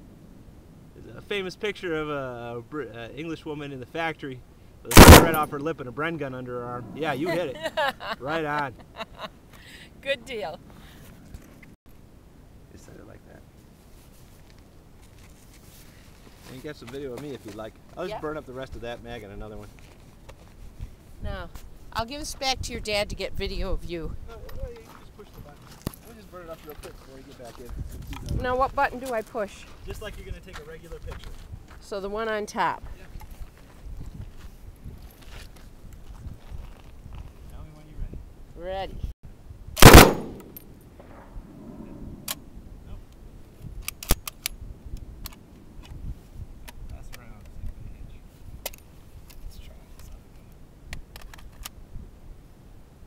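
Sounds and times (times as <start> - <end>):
metallic gun clicks and rattles: 4.9 - 5.5
machine gun shot: 4.9 - 5.6, 39.8 - 41.2
low microphone rumble: 41.0 - 43.5.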